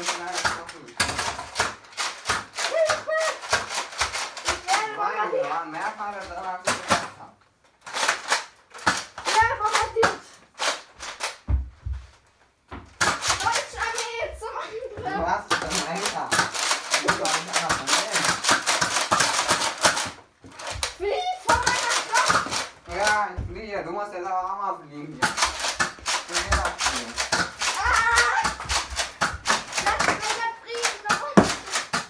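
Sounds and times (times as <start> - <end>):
foam-dart blasters clicking: 0.0 - 5.0, 7.8 - 11.5, 13.0 - 14.3, 15.5 - 23.3, 25.2 - 32.0
children's excited voices: 2.6 - 3.6, 4.4 - 5.7, 13.3 - 15.4, 21.0 - 22.7, 27.6 - 28.6, 29.7 - 31.9.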